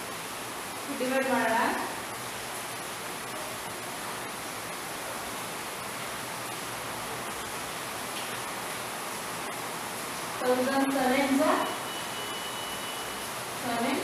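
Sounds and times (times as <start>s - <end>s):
steady background hiss: 0.0s - 14.0s.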